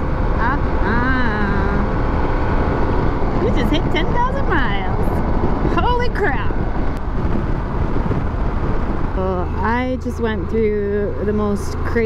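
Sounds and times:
road noise: 0:00.0 - 0:12.0
wind buffeting microphone: 0:00.0 - 0:12.0.

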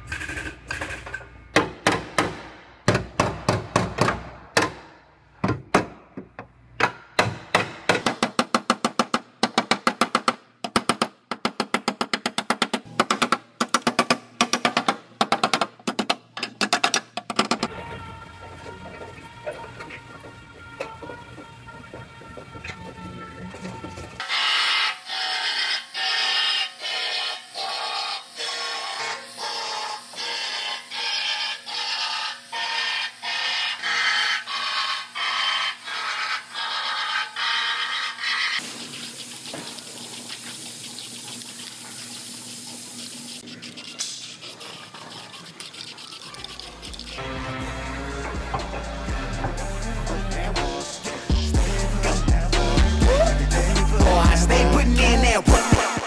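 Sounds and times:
back-and-forth scrubbing: 0:38.0 - 0:47.3.

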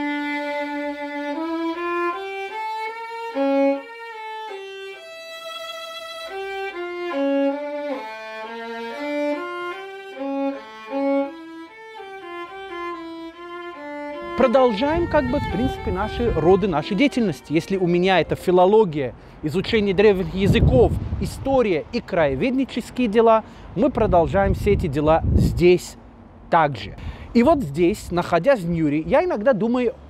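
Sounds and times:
solo violin slow melody: 0:00.0 - 0:19.0.

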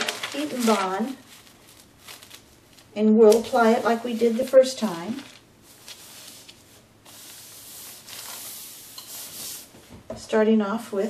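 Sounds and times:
hands rubbing paper sheet: 0:00.0 - 0:02.4, 0:03.3 - 0:09.7.

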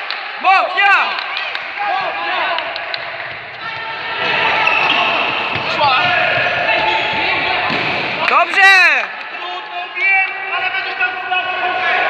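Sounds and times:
handball bouncing on hall floor: 0:01.2 - 0:08.8.

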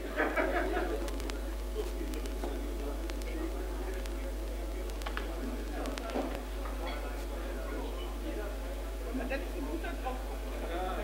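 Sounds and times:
indistinct talk: 0:00.0 - 0:11.0
steady low hum: 0:00.0 - 0:11.0.

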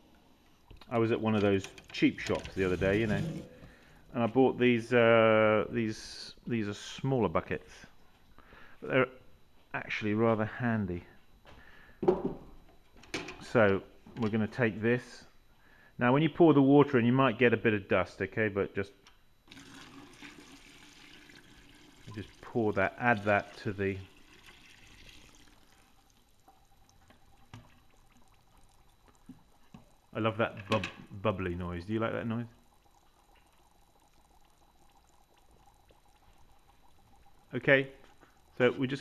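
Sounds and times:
water pouring into plastic bucket: 0:00.8 - 0:03.9, 0:19.5 - 0:39.0.

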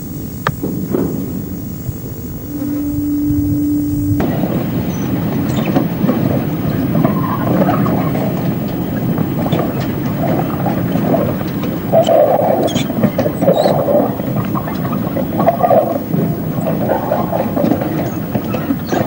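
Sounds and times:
rail wagons clattering: 0:02.5 - 0:19.0.

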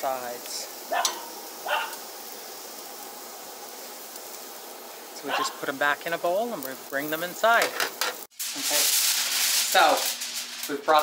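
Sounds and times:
food sizzling on grill: 0:00.0 - 0:11.0.

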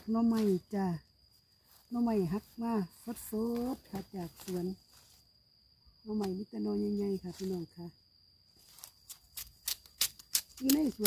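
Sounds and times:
knife cutting bamboo shoot: 0:08.6 - 0:11.0.

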